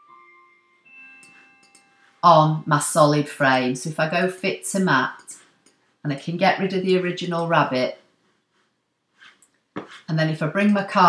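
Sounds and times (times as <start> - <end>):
soft bell-like music: 0.0 - 2.7.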